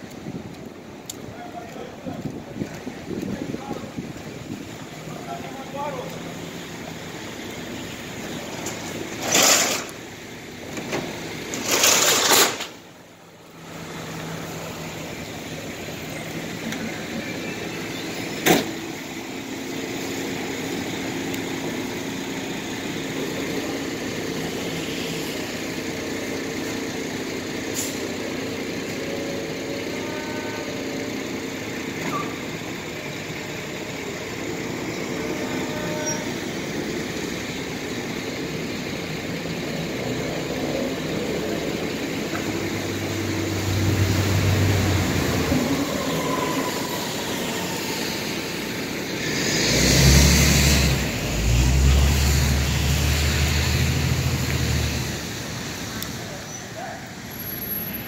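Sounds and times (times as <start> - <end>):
vehicle noise: 0.0 - 58.0
loud rush of noise: 40.0 - 56.4.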